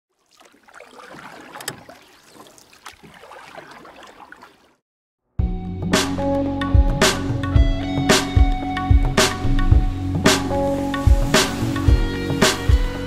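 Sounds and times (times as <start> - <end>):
faint rushing splashing noise: 0.2 - 4.8
loud music: 5.4 - 13.0.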